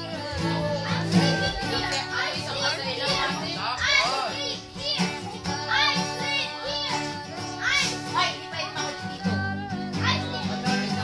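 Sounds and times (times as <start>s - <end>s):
acoustic guitar strumming: 0.0s - 11.0s
girl singing: 0.0s - 11.0s.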